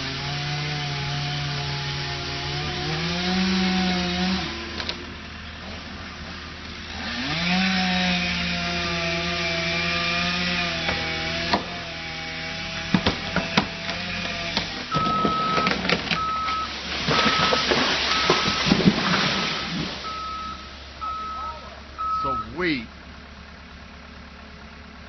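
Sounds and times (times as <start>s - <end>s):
chainsaw running: 0.0s - 5.2s, 6.6s - 21.3s
tree trunk cracking: 12.7s - 20.1s
tree crashing down: 12.7s - 20.5s
backup alarm beeping: 15.0s - 18.7s, 20.0s - 22.6s.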